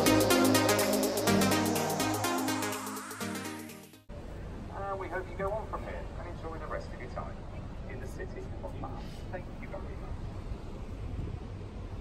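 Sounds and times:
people chatting: 0:04.7 - 0:10.2.

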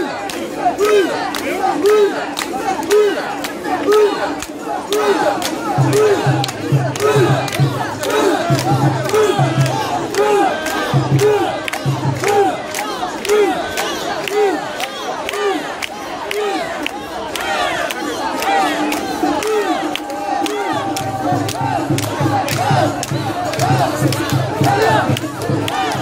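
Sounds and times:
dense crowd noise: 0:00.0 - 0:26.0
people chanting in unison: 0:00.0 - 0:26.0.

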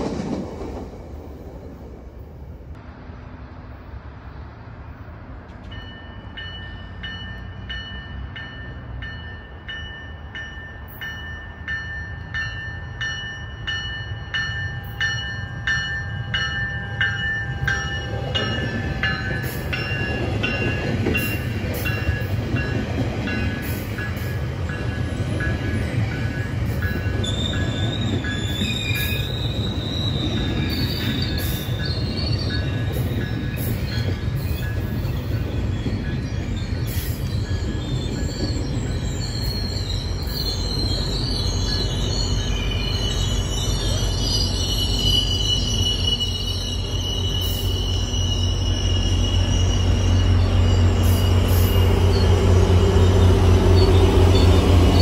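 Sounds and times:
train wheels rumbling on rail: 0:00.0 - 0:55.0
high wheel squeal: 0:25.0 - 0:55.0.

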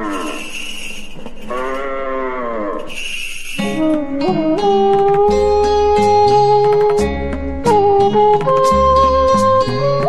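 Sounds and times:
bells jingling: 0:00.0 - 0:03.9
cow mooing: 0:01.5 - 0:02.9
plucked string music: 0:03.6 - 0:10.0.

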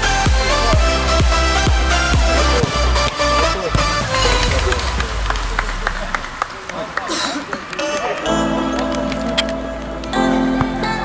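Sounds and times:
electronic dance music: 0:00.0 - 0:11.0
voices calling: 0:00.0 - 0:11.0.

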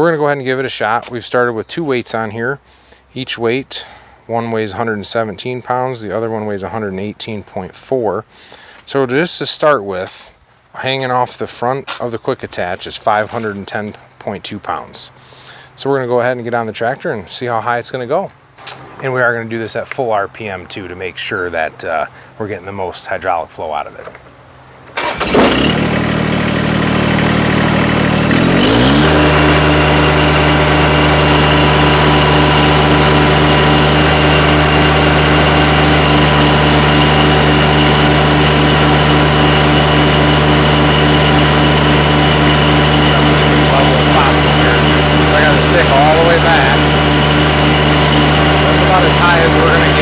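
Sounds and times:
diesel engine starting and revving: 0:24.8 - 0:50.0.

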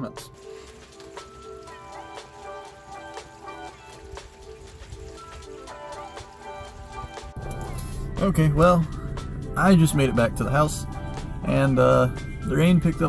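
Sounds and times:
raindrops on plastic cover: 0:00.0 - 0:07.8
background music: 0:00.0 - 0:13.0
low rumble: 0:07.4 - 0:13.0.

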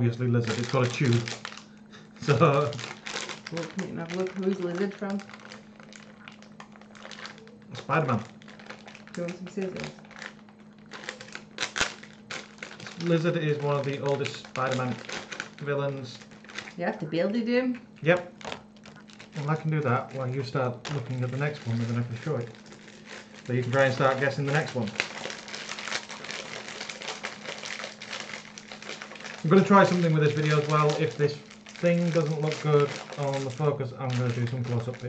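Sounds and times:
plastic bag crinkling: 0:00.0 - 0:35.0.

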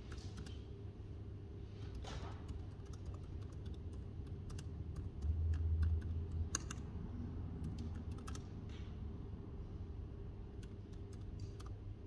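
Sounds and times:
steady low hum: 0:00.0 - 0:12.0
laptop keyboard typing: 0:01.9 - 0:06.9, 0:07.6 - 0:08.4, 0:10.5 - 0:11.8.

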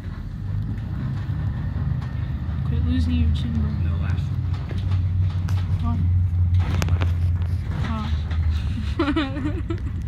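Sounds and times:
bus rumbling inside cabin: 0:00.0 - 0:10.0.

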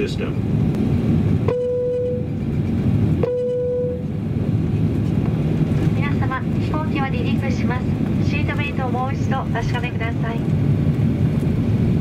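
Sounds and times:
airliner engine rumble: 0:00.0 - 0:12.0
announcement over cabin speaker: 0:06.0 - 0:10.5.

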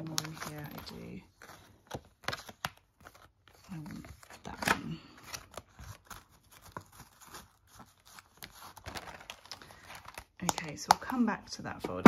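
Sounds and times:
plastic cards clicking and rustling: 0:00.0 - 0:12.0.

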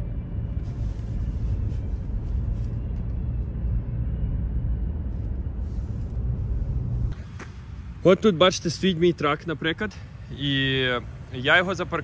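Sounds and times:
car engine and road hum inside: 0:00.0 - 0:10.2.

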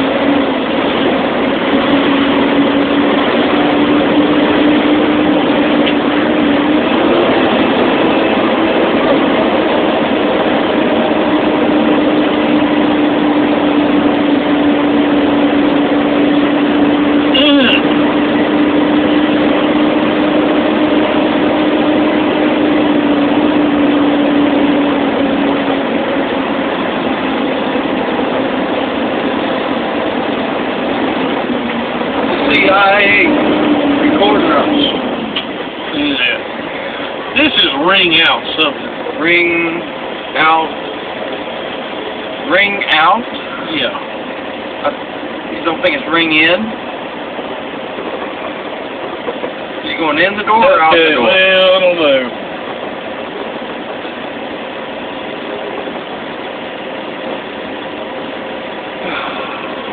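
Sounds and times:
truck diesel engine drone: 0:00.0 - 0:59.9.

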